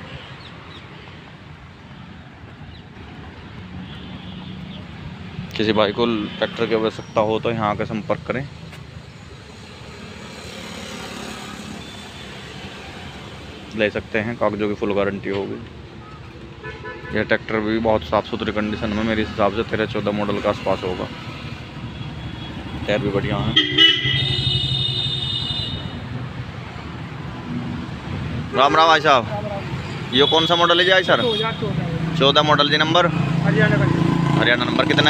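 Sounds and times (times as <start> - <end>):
vehicle horn: 3.8 - 4.8, 16.6 - 17.3, 23.4 - 26.0, 28.5 - 29.1, 30.2 - 31.8.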